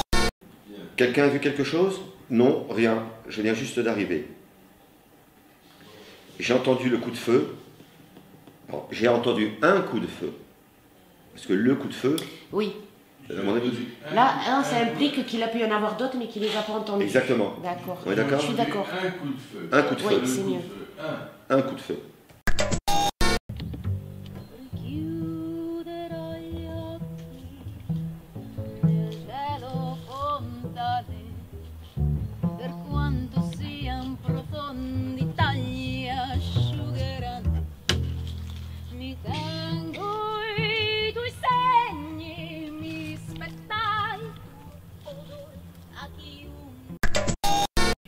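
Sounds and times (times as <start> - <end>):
double bass low notes: 23.5 - 41.6
woman singing with vibrato: 24.5 - 27.8, 28.4 - 31.5, 32.6 - 37.6, 38.9 - 45.6.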